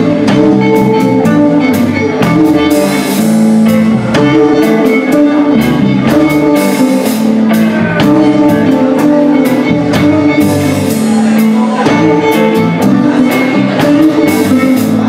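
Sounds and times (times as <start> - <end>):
drum kit steady beat: 0.0 - 15.0
electric bass: 0.0 - 15.0
electric guitars: 0.0 - 15.0.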